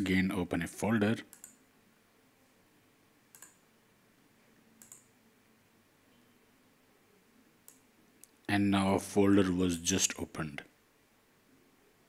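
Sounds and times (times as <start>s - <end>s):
computer mouse clicks: 1.3s - 1.6s, 3.3s - 3.6s, 4.8s - 5.2s, 7.6s - 8.4s.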